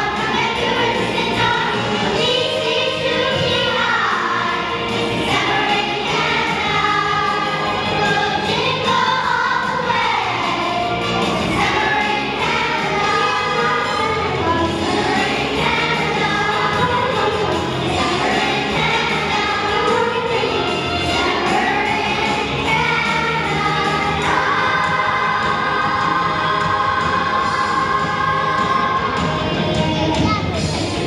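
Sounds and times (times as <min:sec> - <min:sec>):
children's choir singing: 0:00.0 - 0:31.0.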